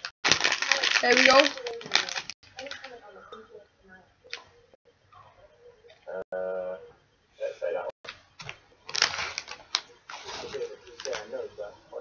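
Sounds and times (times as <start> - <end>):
plastic wrapper crinkling: 0.0 - 3.0, 8.1 - 11.4.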